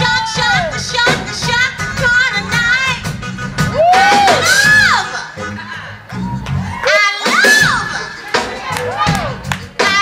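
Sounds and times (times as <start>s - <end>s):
live soul band playing: 0.0s - 10.0s
crowd cheering: 3.7s - 5.0s, 6.1s - 9.8s.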